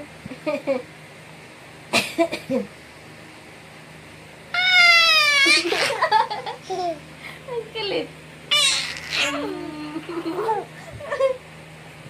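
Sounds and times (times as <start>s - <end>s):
baby squealing: 4.6s - 6.0s, 8.5s - 9.5s.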